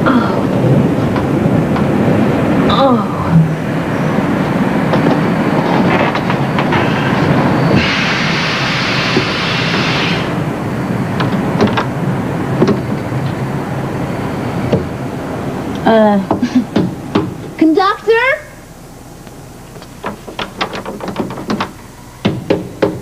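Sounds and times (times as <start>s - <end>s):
train rumble from inside: 0.0s - 17.2s
hiss: 6.7s - 10.5s.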